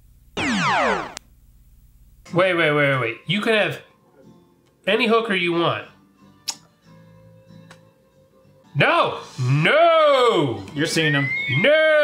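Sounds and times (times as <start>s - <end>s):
descending electronic sweep: 0.4s - 1.2s
short click: 6.4s - 6.7s.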